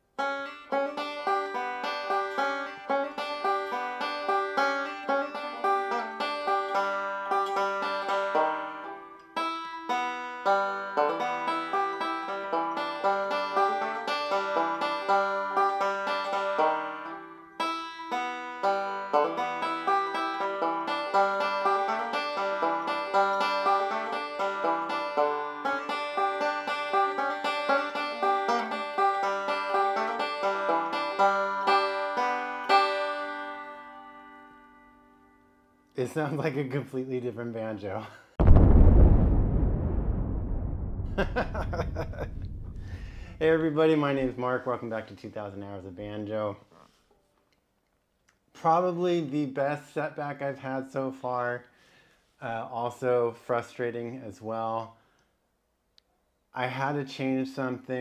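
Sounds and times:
banjo plucked notes: 0:00.2 - 0:35.0.

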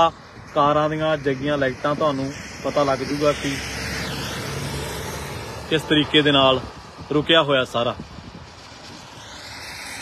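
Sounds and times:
vehicle passing close by: 0:00.0 - 0:07.1, 0:08.0 - 0:10.0
traffic on wet highway: 0:00.0 - 0:10.0.

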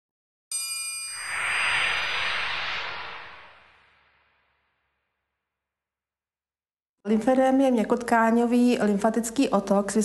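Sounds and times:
bell-like chime: 0:00.5 - 0:01.4
rushing swell: 0:01.1 - 0:04.7.

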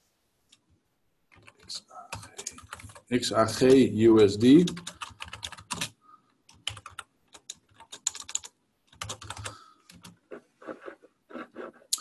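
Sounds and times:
typing on computer keyboard: 0:01.3 - 0:03.8, 0:04.6 - 0:12.0.

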